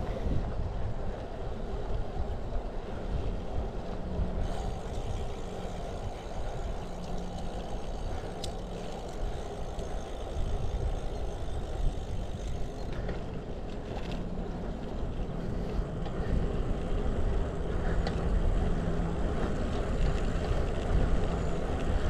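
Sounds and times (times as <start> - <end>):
bike tyre noise on pavement: 0.0 - 22.0
wind rush on microphone: 0.0 - 22.0.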